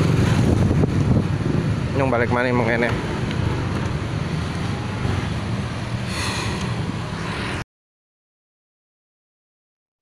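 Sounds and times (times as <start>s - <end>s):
wind buffeting microphone: 0.0s - 2.1s.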